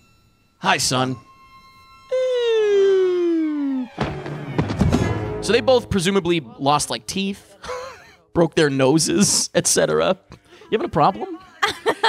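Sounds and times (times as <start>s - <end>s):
tone sliding downward: 0.0s - 7.2s
loud noisy crash: 4.0s - 5.7s.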